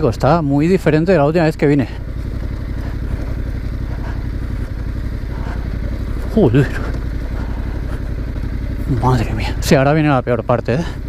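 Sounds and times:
motorcycle engine low revs: 0.0s - 11.0s.

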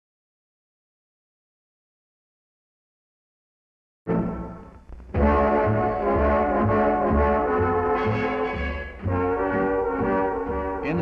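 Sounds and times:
brassy orchestral fanfare: 5.2s - 11.0s.

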